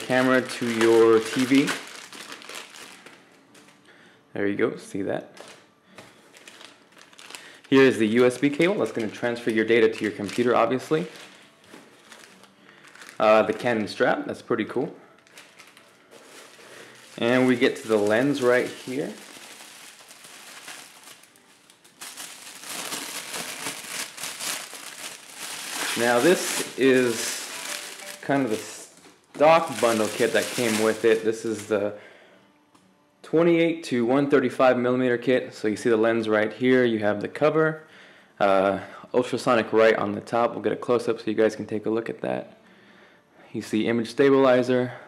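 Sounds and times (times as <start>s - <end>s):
plastic bag crinkling: 0.0s - 3.8s, 6.3s - 14.0s, 15.1s - 31.8s.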